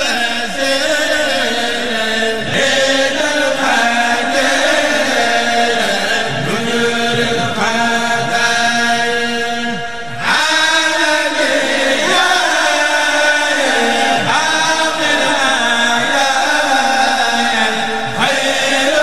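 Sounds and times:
man chanting through a microphone: 0.0s - 19.0s.

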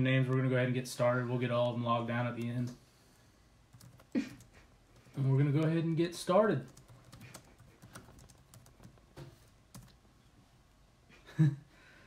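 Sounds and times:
faint laptop keyboard typing: 3.7s - 5.8s, 6.6s - 10.1s.

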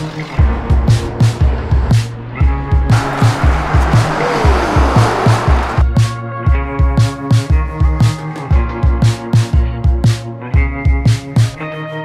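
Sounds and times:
music with kick drum and bass beat: 0.4s - 11.8s
noisy whoosh with falling tone: 2.8s - 5.9s.

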